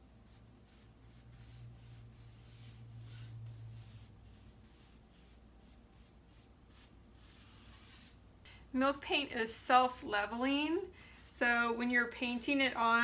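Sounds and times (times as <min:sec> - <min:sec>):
paintbrush swishing on wood: 0:00.2 - 0:08.2, 0:08.8 - 0:13.0.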